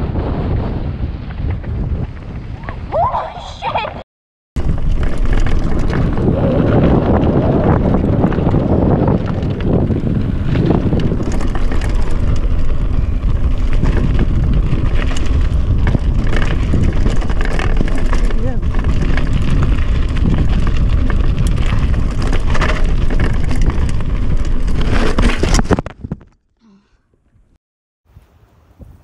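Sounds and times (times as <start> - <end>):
wind buffeting microphone: 0.0 - 4.0, 4.6 - 26.2
tyres rolling over gravel: 4.6 - 26.2
bike rattles and clicks: 4.6 - 26.5.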